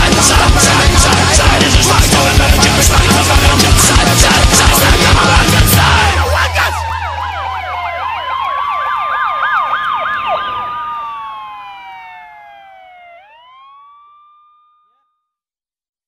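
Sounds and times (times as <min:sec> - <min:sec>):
emergency vehicle sirens: 0:00.0 - 0:14.7.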